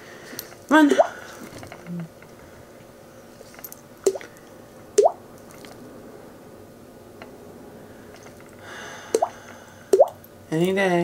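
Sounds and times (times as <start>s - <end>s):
mouth-made water-drop bloops: 4.1s - 4.3s, 5.0s - 5.2s, 10.0s - 10.2s.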